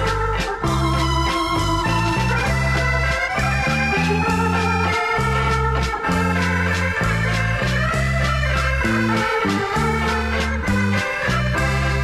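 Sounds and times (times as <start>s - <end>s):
electronic organ melody: 0.0s - 12.0s
short repeated low bass notes: 0.0s - 12.0s.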